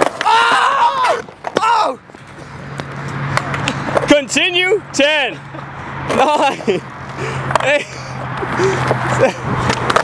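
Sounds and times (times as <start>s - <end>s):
skateboard wheels rolling on concrete: 0.0s - 10.0s
man laughing: 5.3s - 9.6s.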